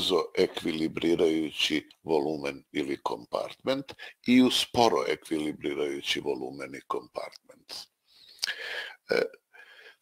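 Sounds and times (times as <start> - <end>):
man breathing: 8.0 - 10.0.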